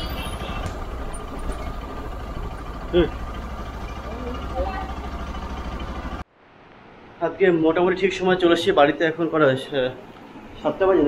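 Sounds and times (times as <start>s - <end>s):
motorbike engine running: 0.0s - 6.2s
road and wind noise: 0.0s - 11.0s.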